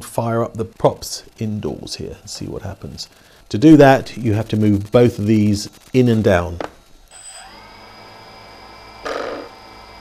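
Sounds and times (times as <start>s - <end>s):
drone motors whining: 0.0s - 10.0s.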